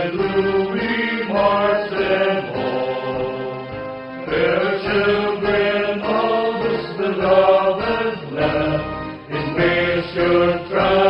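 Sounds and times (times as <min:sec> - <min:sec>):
people singing a slow song: 0:00.0 - 0:11.0.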